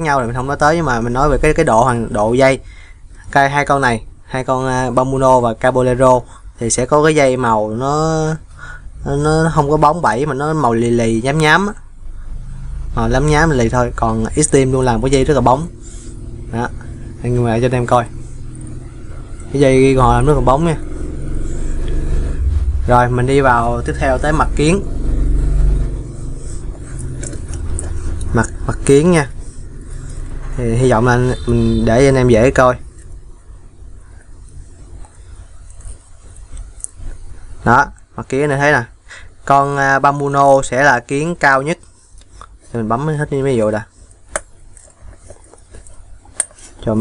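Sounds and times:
passing road traffic rumble: 0:11.9 - 0:37.7.

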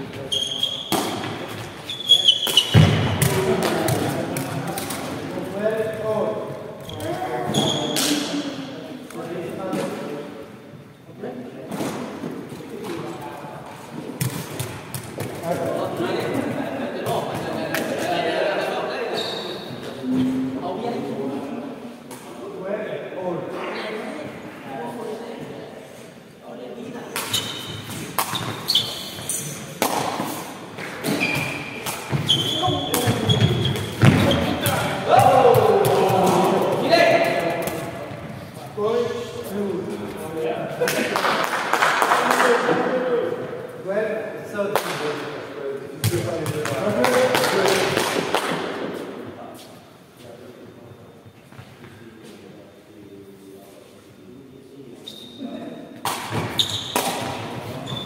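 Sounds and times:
players shouting: 0:34.6 - 0:37.4.

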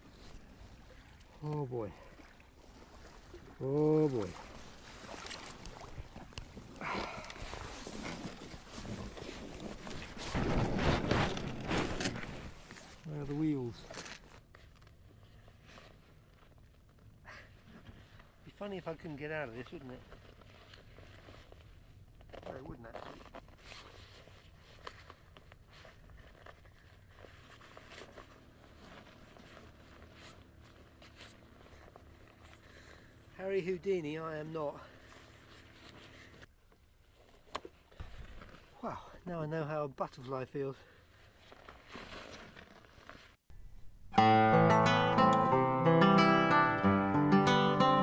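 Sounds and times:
boots splashing in shallow water: 0:00.1 - 0:10.2
kayak hull scraping over sand: 0:04.1 - 0:13.4
jacket fabric rustling: 0:19.8 - 0:33.2, 0:40.9 - 0:43.5.

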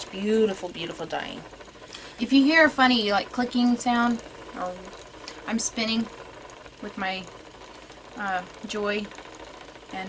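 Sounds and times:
woman speaking: 0:00.0 - 0:01.5, 0:02.2 - 0:06.1, 0:06.8 - 0:07.3, 0:08.2 - 0:09.1
spinning wheel clicking: 0:00.0 - 0:10.0
spinning wheel running: 0:00.0 - 0:10.0.

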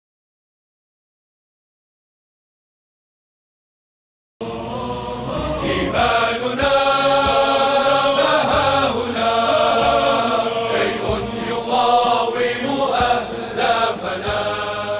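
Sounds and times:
chanted vocal music: 0:04.4 - 0:14.9.

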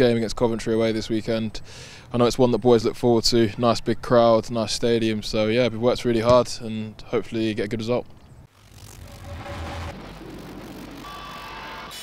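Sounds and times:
electronic logo sting: 0:08.5 - 0:12.0.

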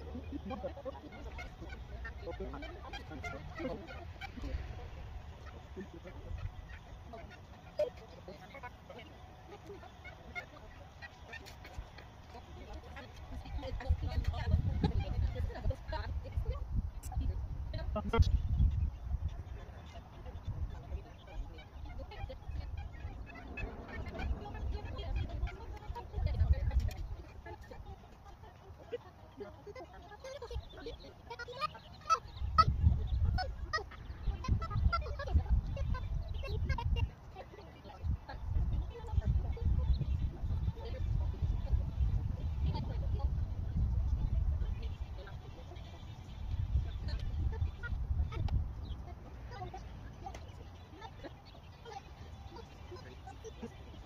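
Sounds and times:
gulls squawking: 0:00.0 - 0:54.0
wind rumble on microphone: 0:11.3 - 0:28.9, 0:32.1 - 0:54.0
faint bird calls: 0:18.2 - 0:54.0
low rumble: 0:22.7 - 0:26.7.

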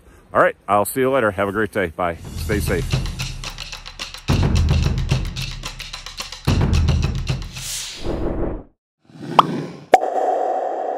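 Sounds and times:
drum and whoosh sting: 0:02.2 - 0:05.8.

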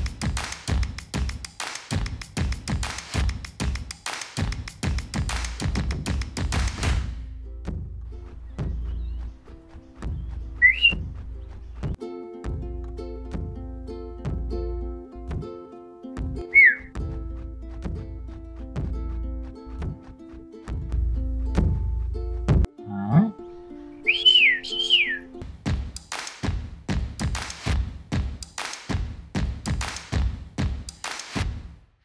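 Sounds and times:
music with drum hits: 0:00.0 - 0:08.0, 0:12.4 - 0:14.7, 0:15.3 - 0:15.6, 0:16.2 - 0:20.1, 0:20.7 - 0:22.7, 0:25.4 - 0:31.9
rising wavering whistle: 0:10.6 - 0:11.0, 0:16.6 - 0:16.9, 0:24.0 - 0:25.3.

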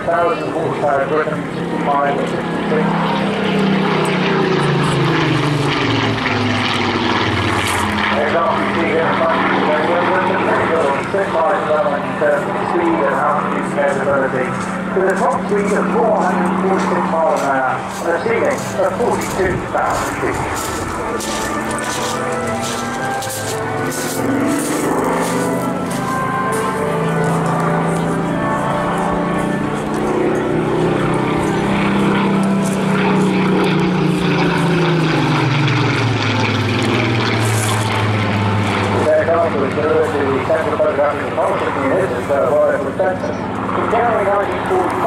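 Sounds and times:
aircraft engine drone: 0:00.0 - 0:45.0
propeller plane flying overhead: 0:00.0 - 0:45.0.

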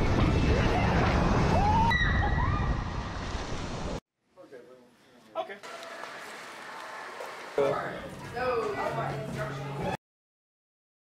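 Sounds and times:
roller coaster train rumbling: 0:00.0 - 0:03.0.

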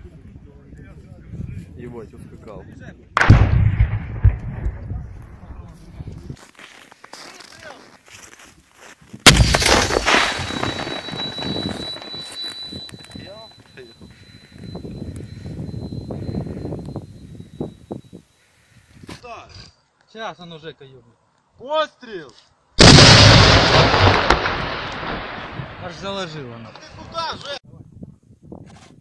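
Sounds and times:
grenade launcher blasts with echo: 0:03.2 - 0:04.9, 0:09.3 - 0:12.1, 0:22.8 - 0:26.0
thin high tone: 0:09.9 - 0:18.5.

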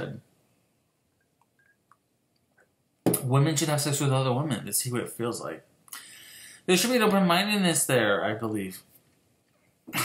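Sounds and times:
man speaking: 0:00.0 - 0:00.3, 0:03.1 - 0:05.7, 0:06.7 - 0:08.9.

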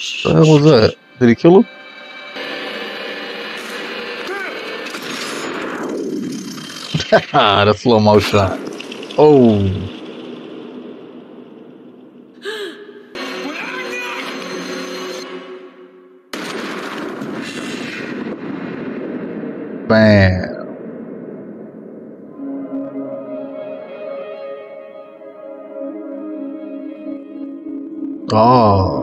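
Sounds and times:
action film sound effects: 0:00.0 - 0:29.0
film score: 0:00.0 - 0:29.0
pitched sweep: 0:20.8 - 0:28.6.

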